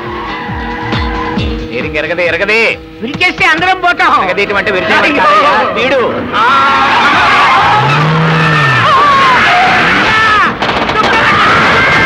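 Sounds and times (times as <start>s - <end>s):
car noise: 0.0s - 10.5s
tyres screeching: 4.7s - 10.5s.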